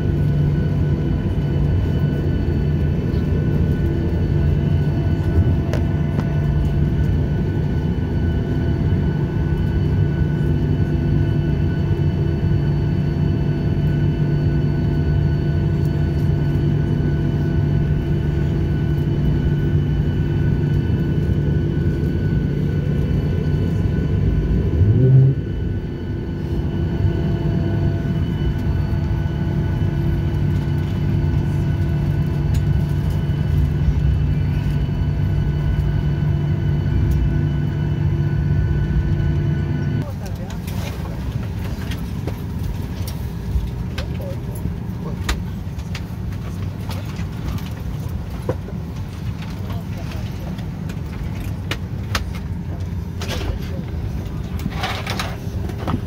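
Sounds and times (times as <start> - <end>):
rising engine whine: 0.0 - 40.0
jet engines humming in cabin: 0.0 - 56.0
people talking: 40.0 - 41.9, 43.9 - 45.4, 49.4 - 50.6, 52.1 - 55.3.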